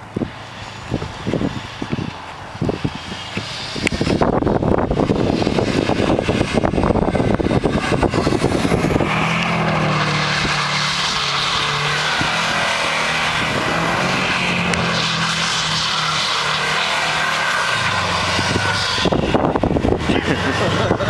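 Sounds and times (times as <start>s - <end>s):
car engine at high revs: 0.0s - 21.0s
tires churning through snow: 0.0s - 21.0s.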